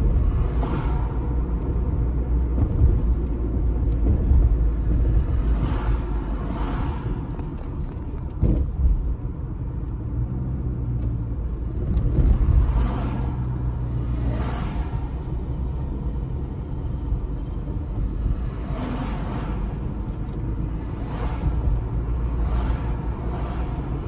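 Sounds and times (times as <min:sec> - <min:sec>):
car road and engine rumble: 0:00.0 - 0:24.0.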